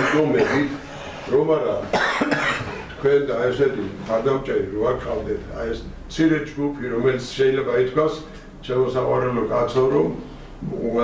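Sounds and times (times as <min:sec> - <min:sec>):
person coughing: 0:00.0 - 0:00.8, 0:01.9 - 0:02.9
man talking: 0:00.0 - 0:11.0.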